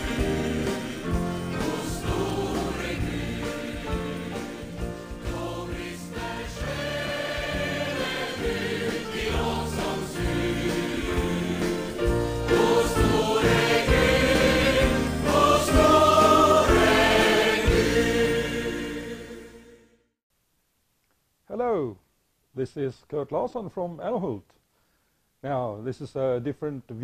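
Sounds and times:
choir singing gospel music: 0.0 - 20.0.

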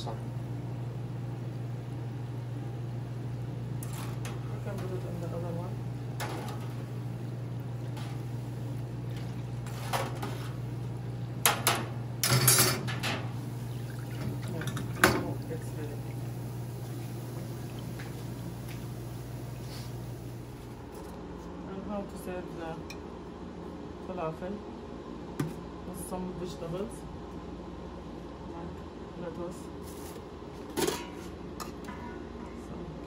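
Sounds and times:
food frying in deep fryer: 1.3 - 20.7.

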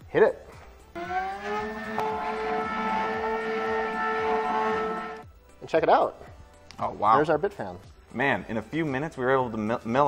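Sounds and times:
mill spindle whining: 1.0 - 5.2.

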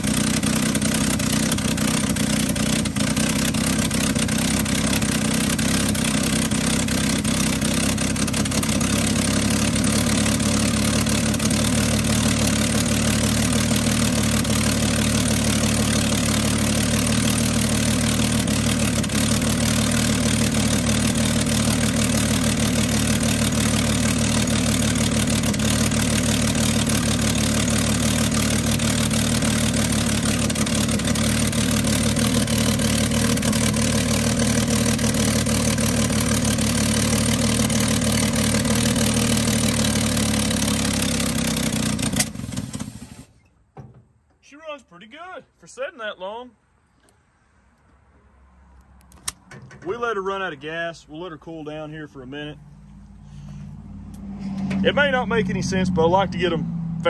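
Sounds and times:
truck engine idling: 0.0 - 43.4, 49.2 - 54.2, 54.8 - 57.0
engine pop: 41.0 - 44.4.

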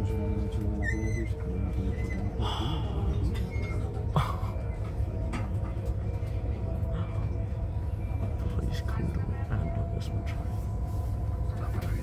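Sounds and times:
vehicle rumble from inside: 0.0 - 12.0.

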